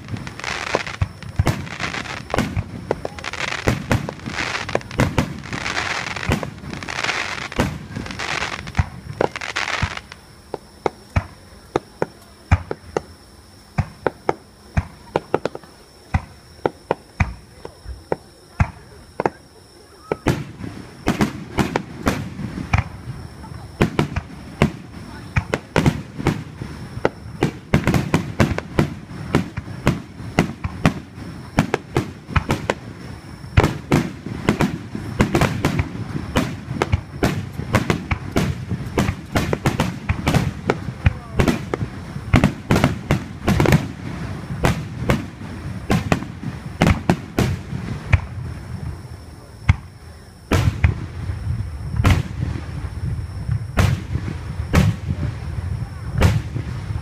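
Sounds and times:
deep firework booms: 0.0 - 10.1, 20.0 - 57.0
firework bangs and crackling: 0.0 - 57.0.

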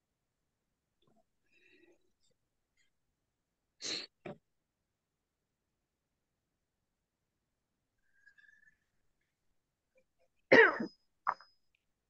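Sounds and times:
person clearing throat: 10.5 - 11.0.

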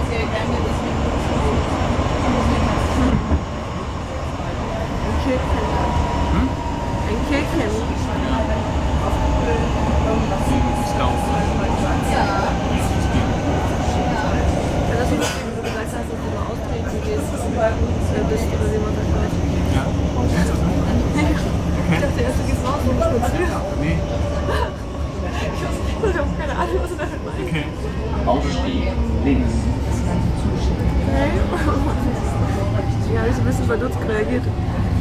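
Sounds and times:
train wheels rumbling on track: 0.0 - 35.0.

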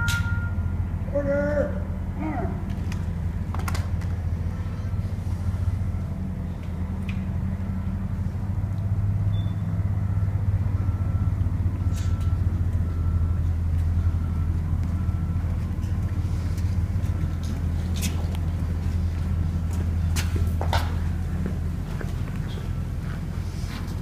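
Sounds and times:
short high-pitched tones: 0.0 - 0.8.

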